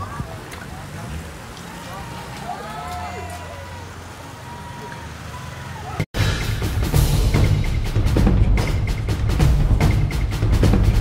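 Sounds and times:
motorcycle engines humming: 0.0s - 6.1s
spectators calling out: 1.5s - 6.0s.

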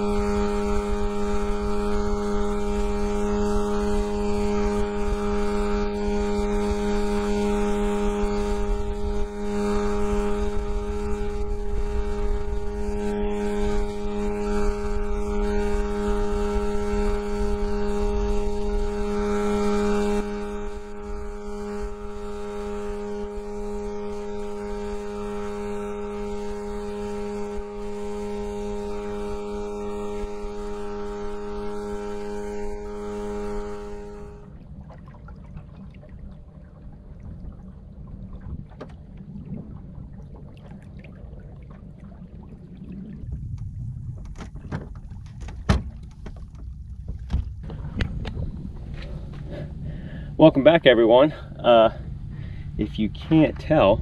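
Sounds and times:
boat hull noise: 0.0s - 54.0s
outboard motor running: 0.0s - 54.0s
wind rumble: 0.0s - 54.0s.

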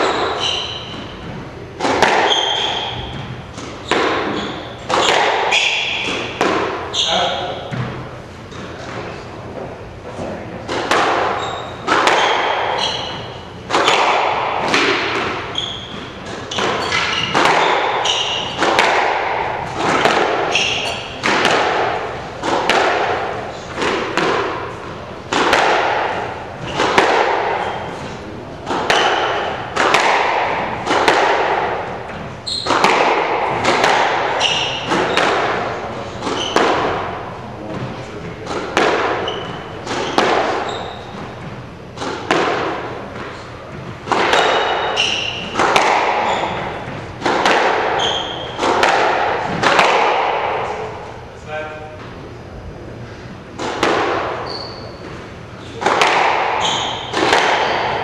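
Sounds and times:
shoes squeaking on hardwood: 0.0s - 1.4s, 2.2s - 5.8s, 11.4s - 13.3s, 15.5s - 18.6s, 32.4s - 32.8s, 36.3s - 36.9s, 39.2s - 41.4s, 46.2s - 46.8s, 48.0s - 48.6s, 54.4s - 55.1s, 56.6s - 57.9s
squash ball cracking off rackets: 0.0s - 6.9s, 10.6s - 51.2s, 53.6s - 55.1s, 55.7s - 58.0s.

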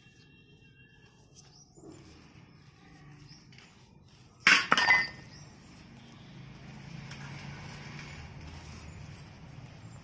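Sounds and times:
clinks on metal or glass: 4.4s - 5.2s.

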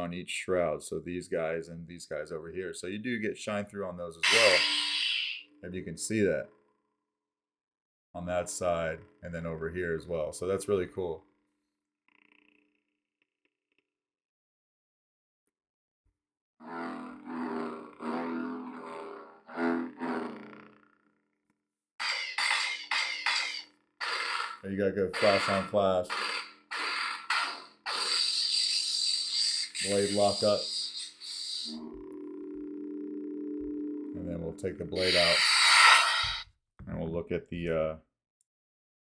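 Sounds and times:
lightsaber hum: 4.1s - 6.5s, 16.6s - 20.8s, 22.0s - 36.4s
lightsaber lock-up effect: 4.2s - 5.4s, 22.0s - 30.8s.

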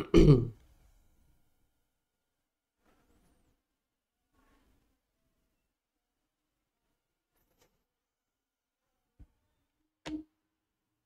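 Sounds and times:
man clearing his throat: 0.0s - 0.6s.

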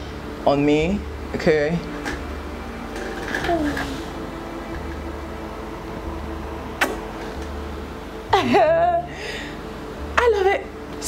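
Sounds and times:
soft background music: 0.0s - 11.0s
kiss smack of lips: 6.8s - 7.2s.

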